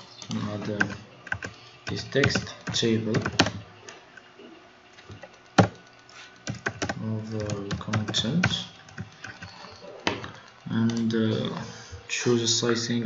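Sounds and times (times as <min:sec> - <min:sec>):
typing on computer keyboard: 0:00.6 - 0:03.6, 0:05.2 - 0:09.8.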